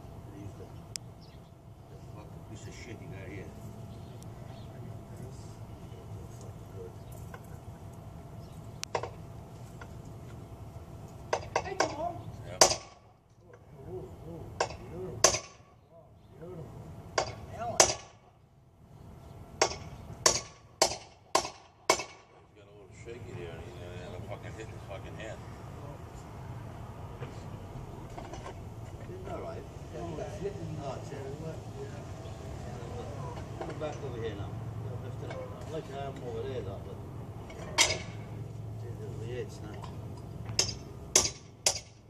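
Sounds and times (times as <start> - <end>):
hammer striking metal: 14.6 - 15.7, 19.6 - 22.4, 40.6 - 42.0.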